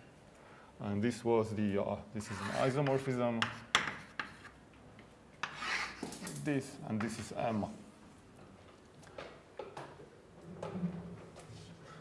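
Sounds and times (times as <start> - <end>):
chalk scratching on blackboard: 2.2 - 4.6, 5.4 - 6.3
chalk tapping on blackboard: 2.4 - 4.6.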